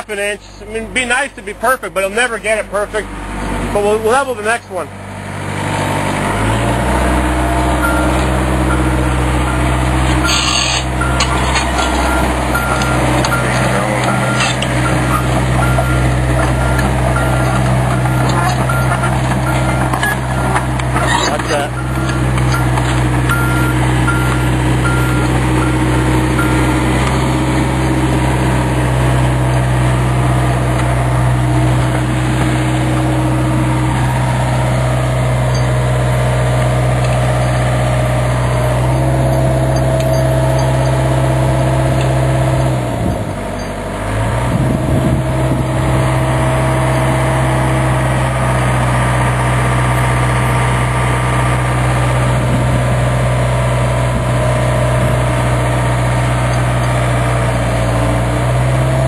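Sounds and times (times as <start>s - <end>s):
excavator diesel engine running: 0.0s - 59.0s.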